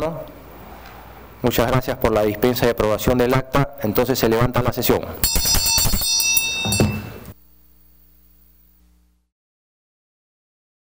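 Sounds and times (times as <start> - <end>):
faint steady hum: 0.0 - 9.3
brass hand bell ringing: 5.2 - 7.4.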